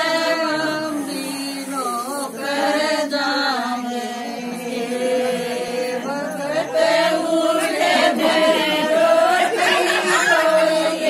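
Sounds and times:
women singing folk song: 0.0s - 11.0s.

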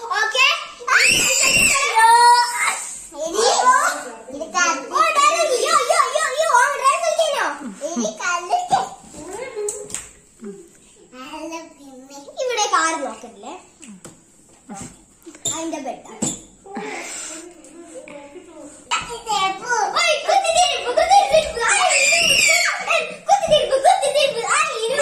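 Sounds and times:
children's voices: 0.0s - 14.1s, 14.7s - 25.0s
child screaming: 0.8s - 2.7s, 21.6s - 23.1s.

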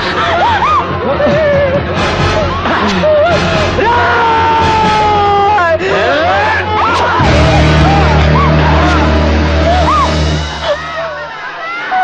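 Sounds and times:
low drone: 7.2s - 11.0s.

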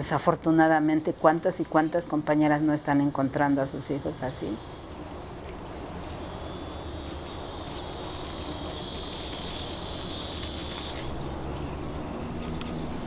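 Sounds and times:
insects buzzing: 0.0s - 13.0s.

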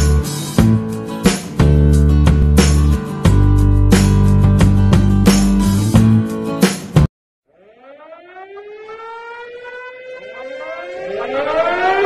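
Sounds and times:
siren wailing: 7.4s - 12.0s.

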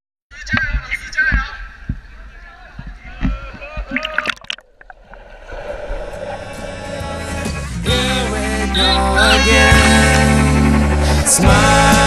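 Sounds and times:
water sloshing: 0.4s - 7.7s
echoing voices: 5.2s - 12.0s
background pop music: 6.6s - 12.0s.

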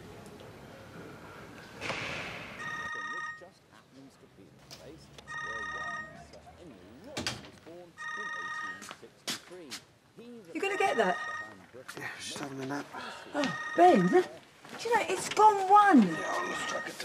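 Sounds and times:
phone ringing with trills: 2.6s - 3.6s, 5.2s - 6.4s, 8.0s - 8.9s, 10.6s - 11.7s, 13.3s - 17.0s.

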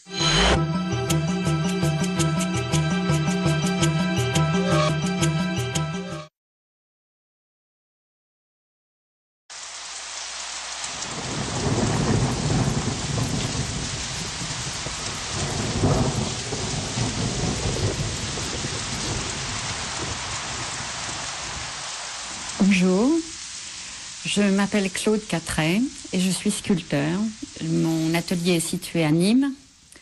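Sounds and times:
steady rain: 9.5s - 30.0s
rolling thunder: 11.0s - 22.8s.

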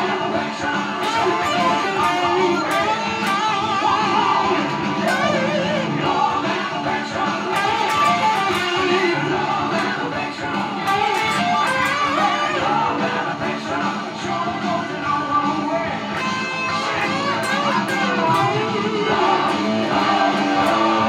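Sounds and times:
electric guitar lead with bends: 0.0s - 21.0s
rock backing track with drums: 0.0s - 21.0s.

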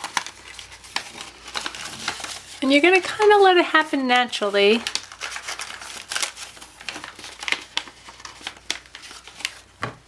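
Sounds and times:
paper rustling and crinkling: 0.0s - 10.0s.

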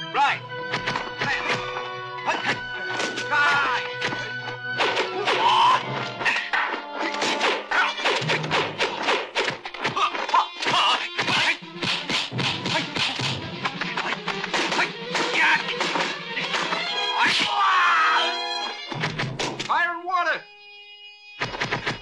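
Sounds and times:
fight soundtrack music: 0.0s - 17.6s, 18.2s - 19.7s.

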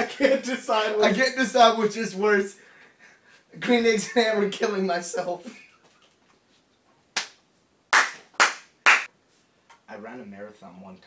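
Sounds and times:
sharp hand claps: 7.2s - 9.1s.

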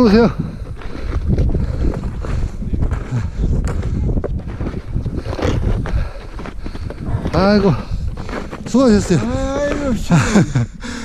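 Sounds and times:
wind buffeting microphone: 0.0s - 11.0s
snowshoe steps crunching in snow: 4.5s - 10.2s.

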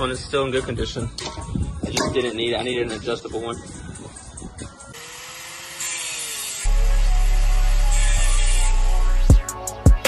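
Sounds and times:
angle grinder grinding steel: 5.0s - 9.3s.

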